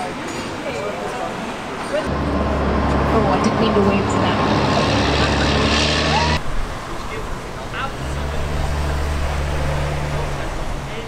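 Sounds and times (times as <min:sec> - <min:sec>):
vehicle engine driving past: 0:02.0 - 0:06.5
low engine hum: 0:02.1 - 0:06.4.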